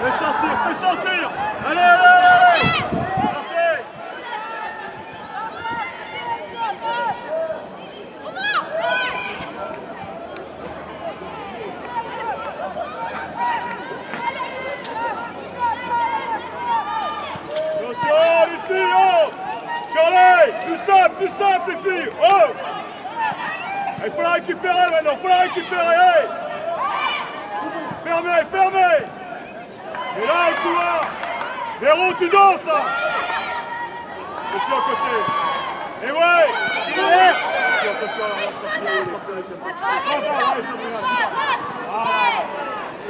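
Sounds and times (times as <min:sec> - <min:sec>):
high voices shouting: 0:11.0 - 0:43.0.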